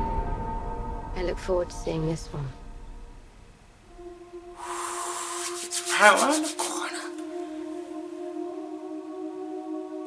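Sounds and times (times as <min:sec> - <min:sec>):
sustained low tone: 0:00.0 - 0:05.6
fluttery hiss: 0:04.6 - 0:07.7.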